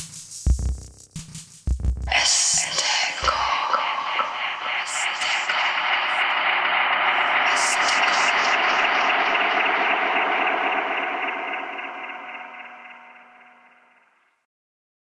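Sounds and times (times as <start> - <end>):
tape-echo held tones: 2.2 - 14.3.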